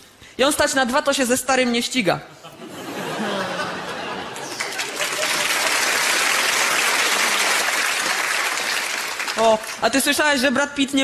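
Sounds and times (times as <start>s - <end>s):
audience applauding: 4.2s - 9.8s.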